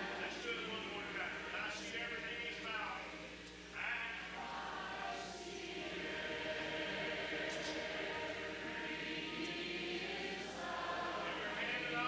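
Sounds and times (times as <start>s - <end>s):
male quartet and audience singing hymn: 0.0s - 3.1s, 3.8s - 12.0s.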